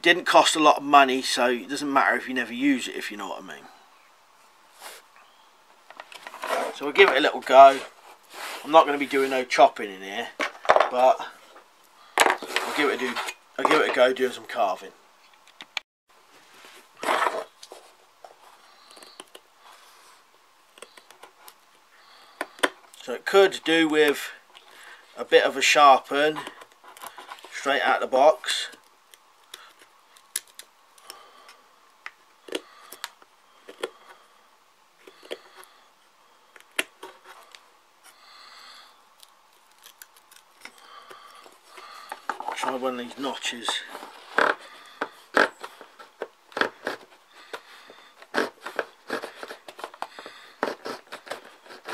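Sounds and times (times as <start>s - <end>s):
rustling scrape: 6.1s - 9.6s, 12.2s - 14.0s, 16.3s - 18.6s
knife and stick handling noise: 12.2s - 14.1s, 39.1s - 51.9s.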